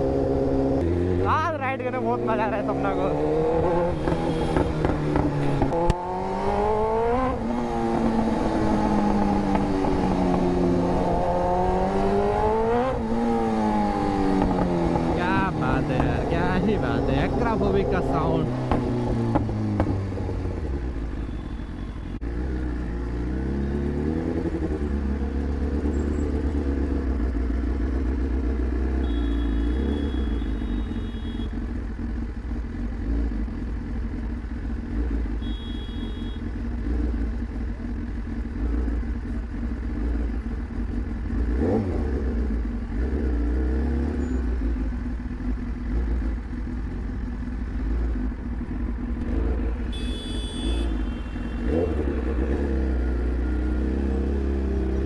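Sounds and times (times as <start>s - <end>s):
motorcycle engine at low revs: 0.0s - 55.0s.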